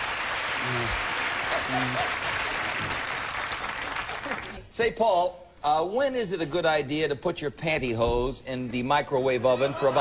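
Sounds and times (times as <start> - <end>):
studio audience applauding: 0.0 - 4.7.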